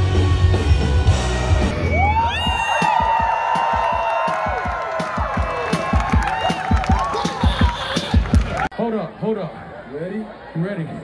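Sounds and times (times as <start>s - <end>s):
live rock band: 0.0s - 3.0s
crowd cheering and whooping: 1.4s - 8.7s.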